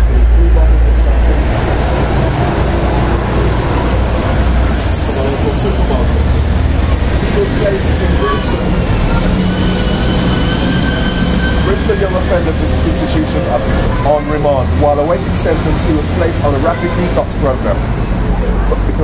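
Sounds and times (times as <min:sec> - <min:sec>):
heavy traffic rumble: 0:00.0 - 0:19.0
large vehicle passing: 0:00.0 - 0:19.0
thin high squealing tones: 0:04.6 - 0:06.3, 0:07.7 - 0:14.4.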